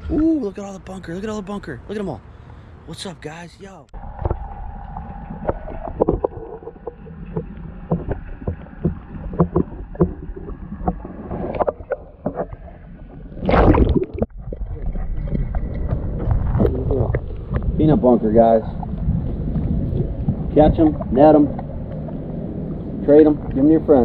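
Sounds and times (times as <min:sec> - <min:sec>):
underwater low hum: 0:03.9 - 0:24.0.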